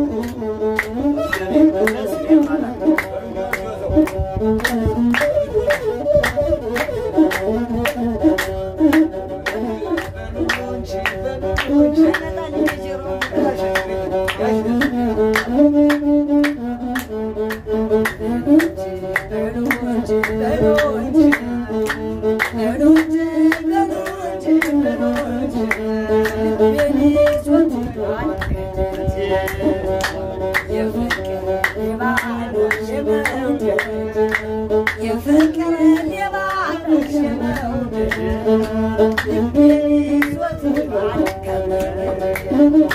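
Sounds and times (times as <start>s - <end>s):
bowed fiddle melody: 0.0s - 42.9s
hand-claps: 0.0s - 42.9s
woman singing: 9.8s - 16.0s, 18.2s - 42.9s.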